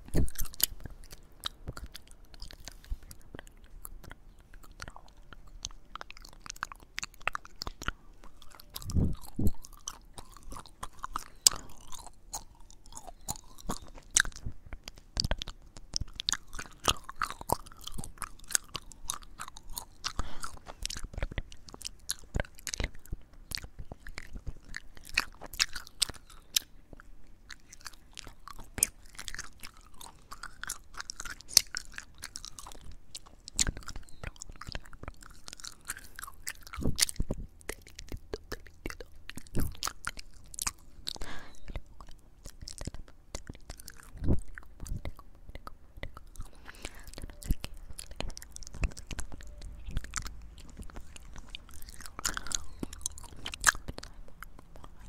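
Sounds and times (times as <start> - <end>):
gum chewing with mouth clicks: 0.0 - 55.0.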